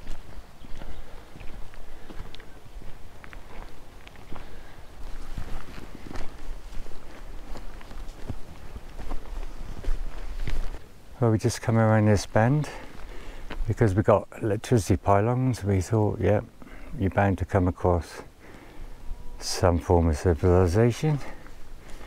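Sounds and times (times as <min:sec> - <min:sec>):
footsteps on stony dirt track: 0:00.0 - 0:10.9, 0:12.1 - 0:14.1, 0:19.7 - 0:22.0.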